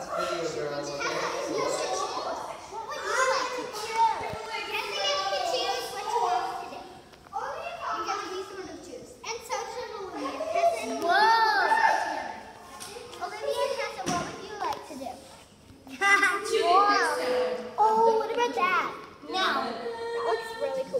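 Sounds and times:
children talking excitedly: 0:00.0 - 0:20.9.

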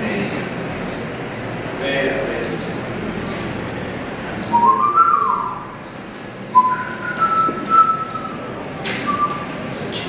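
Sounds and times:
person whistling a tune: 0:04.5 - 0:05.6, 0:06.6 - 0:08.4.

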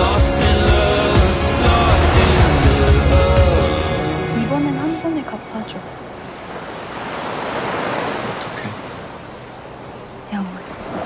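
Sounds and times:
ocean waves washing onto beach: 0:00.9 - 0:11.0.

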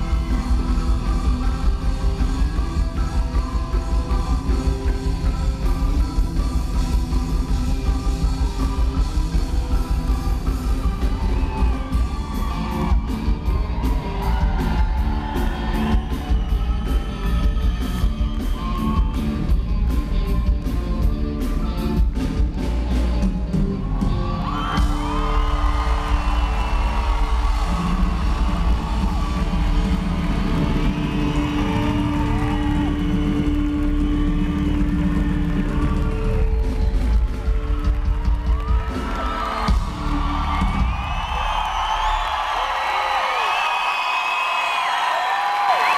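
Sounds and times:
crowd cheering and whooping: 0:00.0 - 0:45.9.

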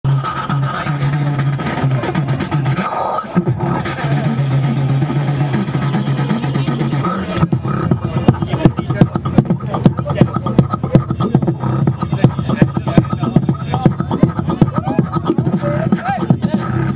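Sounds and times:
beatboxed kick and snare sounds: 0:00.1 - 0:16.9
beatboxing bass tone with whistle: 0:00.1 - 0:16.9.

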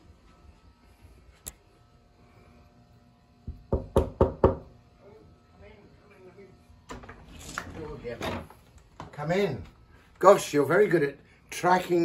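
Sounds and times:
knocking on wooden door: 0:03.5 - 0:04.7.

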